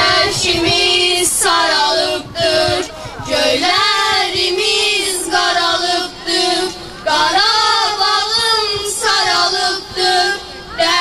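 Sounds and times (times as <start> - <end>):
girls singing in unison: 0.0 - 11.0.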